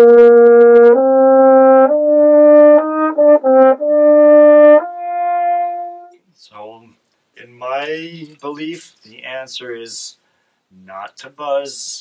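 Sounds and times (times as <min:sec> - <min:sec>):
french horn playing: 0:00.0 - 0:06.2.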